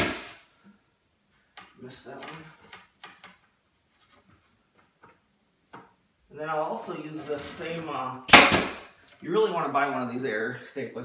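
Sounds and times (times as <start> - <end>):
pneumatic stapler firing: 0.0 - 0.4, 8.3 - 8.8.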